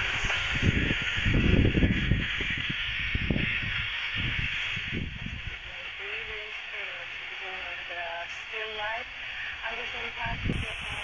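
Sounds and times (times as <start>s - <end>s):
low rumbling gusts: 0.0s - 11.0s
radio static hissing: 0.0s - 11.0s.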